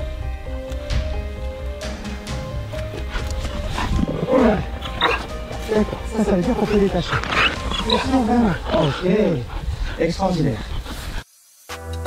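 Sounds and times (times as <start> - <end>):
background music with steady tones: 0.0 - 9.5, 11.4 - 12.0.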